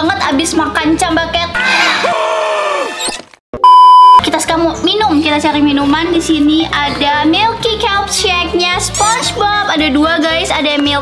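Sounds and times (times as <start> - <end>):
electronic censor beep: 3.6 - 4.2.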